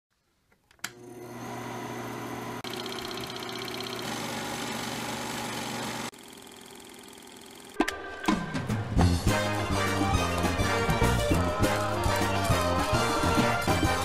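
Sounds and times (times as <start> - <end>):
projector motor humming: 0.8 - 7.9.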